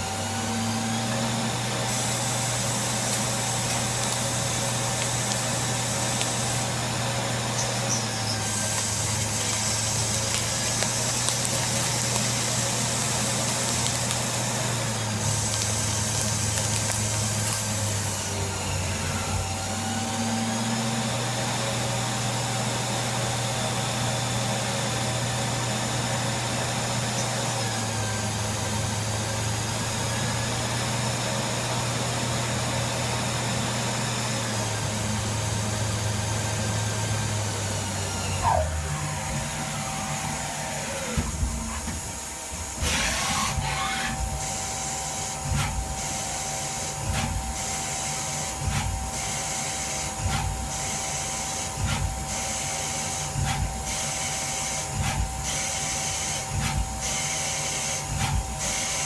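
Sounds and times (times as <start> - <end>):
lathe running with whining tones: 0.0 - 59.0.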